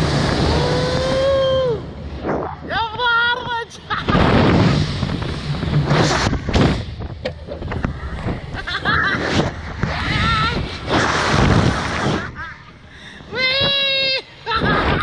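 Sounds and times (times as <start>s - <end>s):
wind rushing over microphone: 0.0s - 15.0s
riders whooping and laughing: 0.4s - 2.0s, 8.4s - 9.6s, 11.9s - 15.0s
person crying out: 0.5s - 1.9s.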